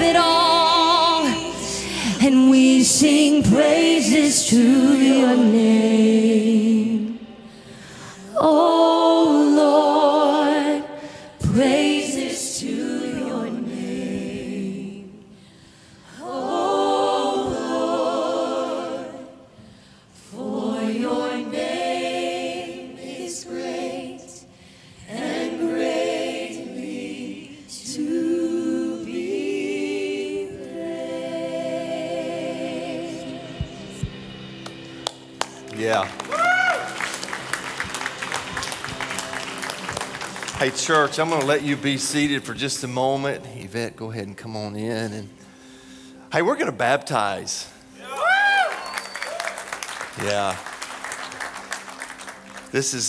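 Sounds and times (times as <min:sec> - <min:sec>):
choir singing: 0:00.0 - 0:07.5, 0:08.2 - 0:15.4, 0:16.1 - 0:19.6, 0:20.2 - 0:34.4
worship band chord: 0:15.4 - 0:48.0
congregation applauding: 0:35.0 - 0:43.2, 0:48.0 - 0:53.0
drawn-out cheer: 0:36.0 - 0:40.7, 0:48.0 - 0:52.4.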